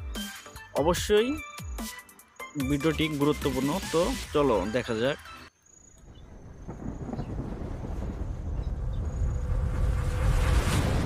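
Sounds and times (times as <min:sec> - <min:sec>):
deep rumbling: 0:06.0 - 0:11.0.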